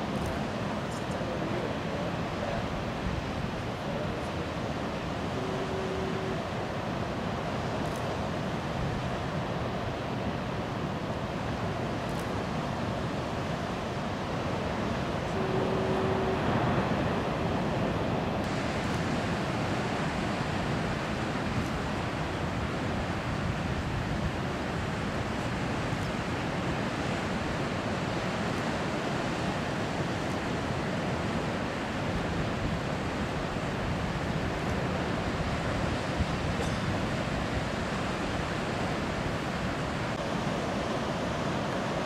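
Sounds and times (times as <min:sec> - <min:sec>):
ocean waves breaking: 0:00.0 - 0:42.0.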